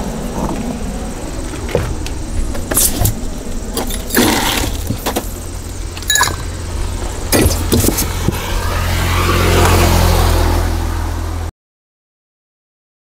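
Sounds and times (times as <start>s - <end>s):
steady low rumble: 0.0s - 3.8s, 5.3s - 8.8s
steel cup clinking: 6.1s - 6.5s
car passing: 6.5s - 11.5s.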